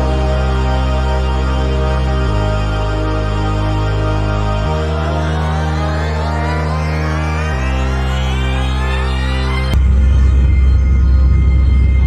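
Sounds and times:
dark electronic synth music: 0:00.0 - 0:12.0.

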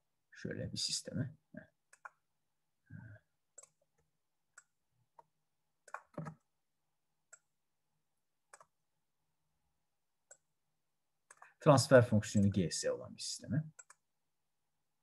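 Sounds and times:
faint computer clicks: 0:13.7 - 0:14.0.

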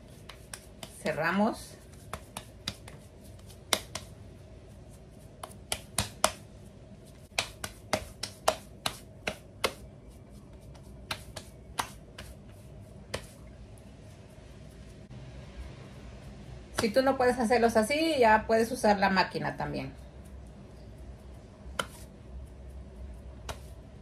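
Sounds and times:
hands slapping dough: 0:00.0 - 0:13.6, 0:16.7 - 0:17.2, 0:21.3 - 0:24.0.

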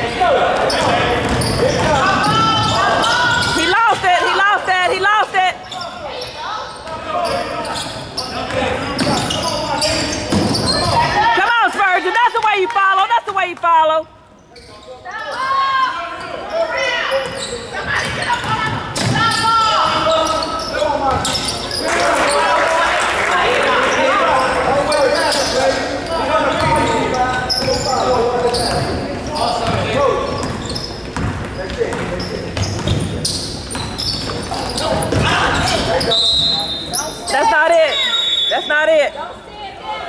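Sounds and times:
voices calling out echoing: 0:00.0 - 0:40.0
basketball bouncing on hardwood: 0:30.4 - 0:33.1.

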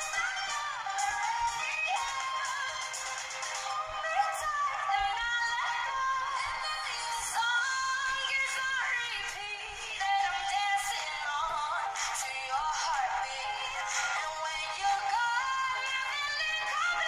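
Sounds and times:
woman singing pop: 0:00.0 - 0:17.0.

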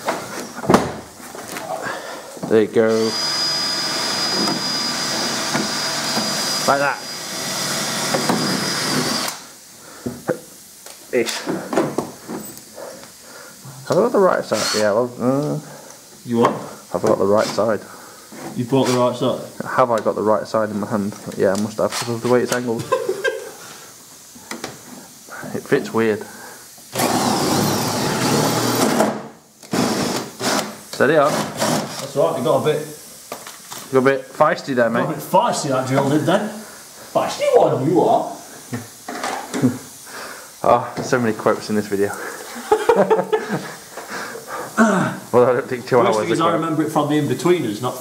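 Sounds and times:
cordless drill running: 0:02.9 - 0:09.5, 0:26.9 - 0:30.7, 0:31.3 - 0:32.1
small electric motor whining: 0:02.9 - 0:09.5.

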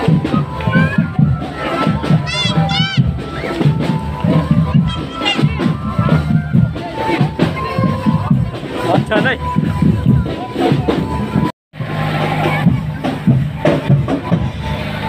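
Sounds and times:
crowd voices: 0:00.0 - 0:15.0
marching drums playing: 0:00.0 - 0:15.0.

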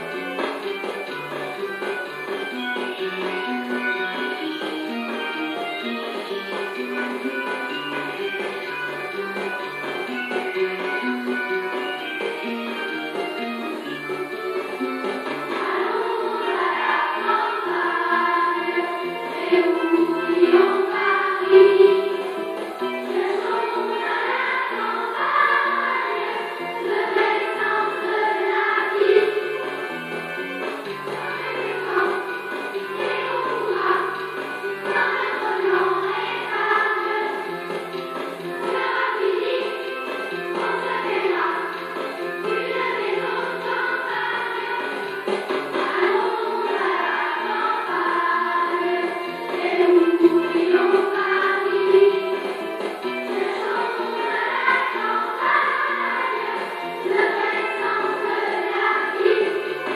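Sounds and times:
children's choir singing: 0:00.0 - 0:59.9
instrumental accompaniment: 0:00.0 - 0:59.9.

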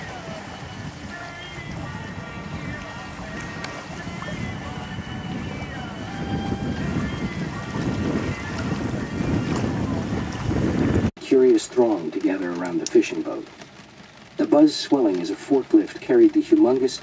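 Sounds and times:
music playing: 0:00.0 - 0:11.1
water rushing along hull: 0:00.0 - 0:17.0
wind buffeting microphone: 0:00.0 - 0:17.0.

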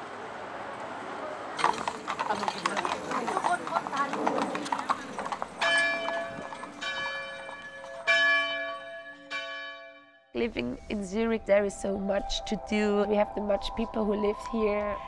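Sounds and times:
horse hooves on pavement: 0:01.6 - 0:09.1
church bell ringing: 0:05.6 - 0:10.3.

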